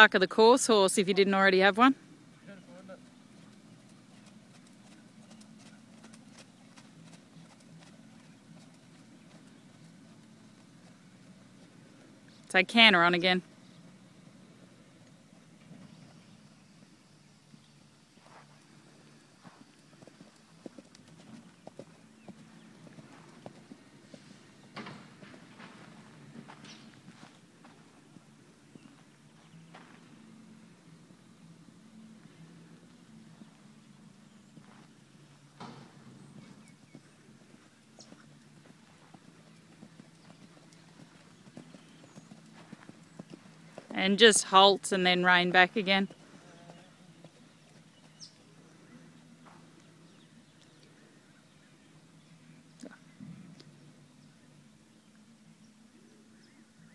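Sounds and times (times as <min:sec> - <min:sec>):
horse hoofbeats on soft ground: 0:02.6 - 0:55.2.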